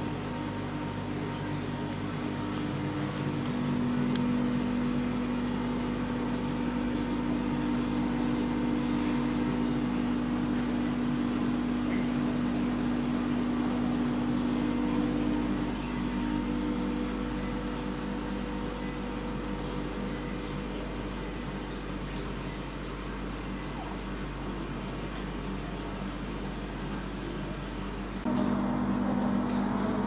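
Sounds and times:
steady mechanical hum: 0:00.0 - 0:30.0.

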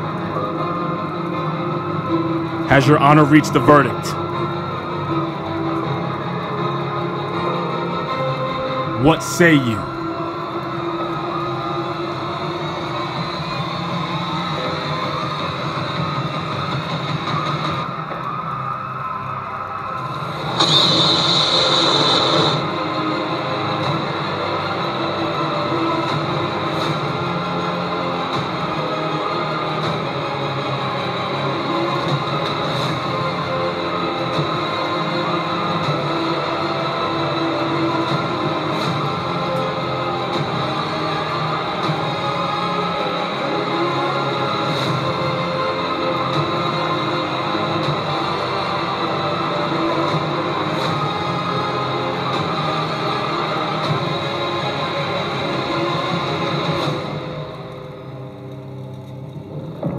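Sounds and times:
sustained background music: 0:00.0 - 0:15.6.

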